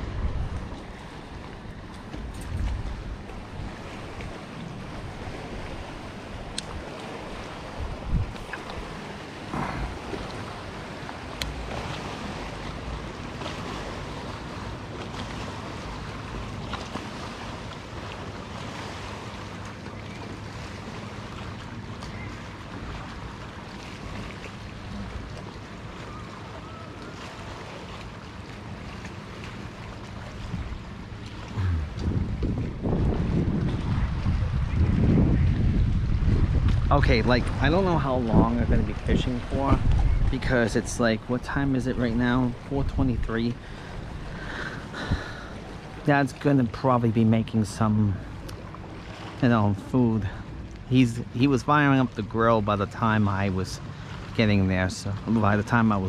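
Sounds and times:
wind blowing on microphone: 2.2 - 6.9, 7.6 - 10.3, 31.5 - 45.4.

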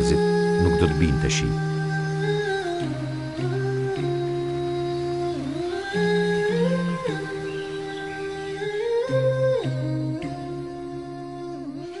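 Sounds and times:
voices humming in harmony: 0.0 - 12.0.

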